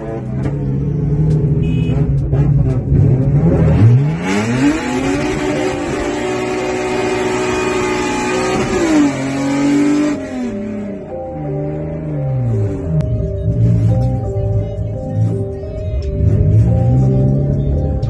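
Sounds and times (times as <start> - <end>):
car engine accelerating: 0.0 - 18.0.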